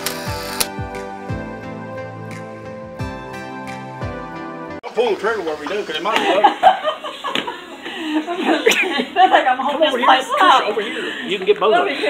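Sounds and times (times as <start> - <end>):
background music with steady beat: 0.0 - 4.9.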